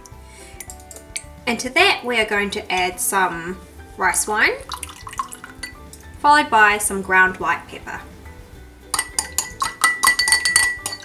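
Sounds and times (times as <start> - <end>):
spoon clinking against glass: 4.7 - 6.0, 8.9 - 11.0
glass ringing: 4.8 - 6.0, 8.9 - 11.0.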